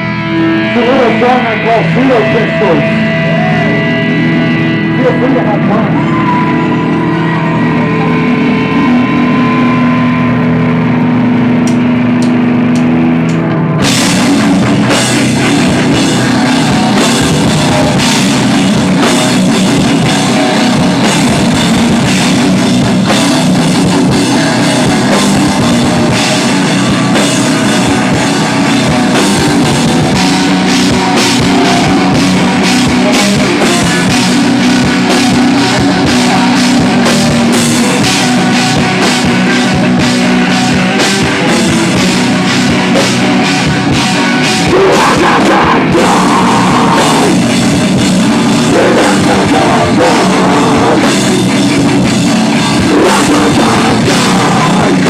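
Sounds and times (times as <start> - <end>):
drum kit: 0.0 - 55.0
heavy metal band playing: 0.0 - 55.0.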